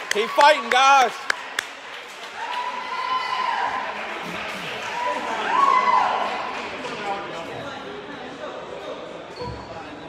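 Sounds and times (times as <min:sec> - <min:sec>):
chatter of voices: 0:03.8 - 0:10.0.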